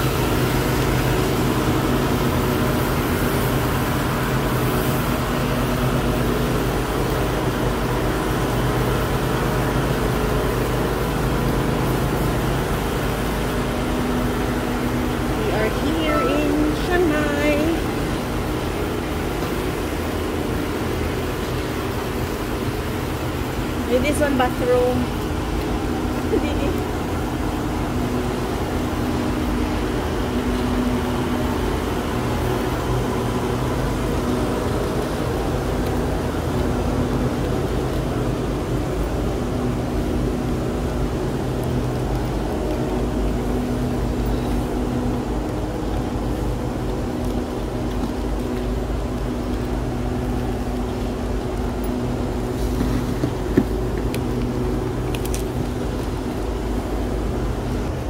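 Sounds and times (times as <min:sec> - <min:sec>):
diesel train engines humming: 0:00.0 - 0:58.0
suitcase wheels rolling: 0:00.0 - 0:58.0.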